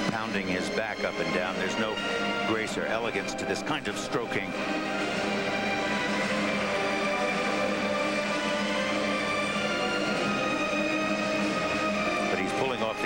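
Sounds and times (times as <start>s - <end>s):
orchestral music with held chords: 0.0s - 13.0s.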